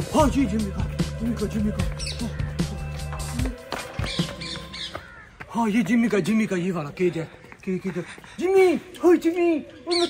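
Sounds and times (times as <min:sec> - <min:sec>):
man's voice: 0:00.0 - 0:03.6, 0:05.4 - 0:10.0
bird squawks: 0:01.9 - 0:02.9, 0:04.0 - 0:05.4.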